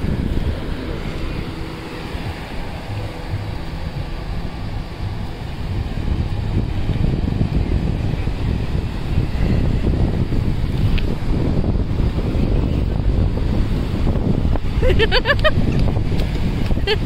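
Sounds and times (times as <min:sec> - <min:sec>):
sea waves: 0:00.0 - 0:17.0
wind buffeting microphone: 0:00.0 - 0:17.0.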